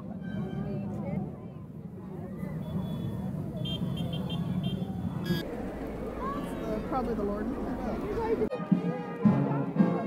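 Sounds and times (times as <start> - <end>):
motorcycle engines droning: 2.4 - 8.5.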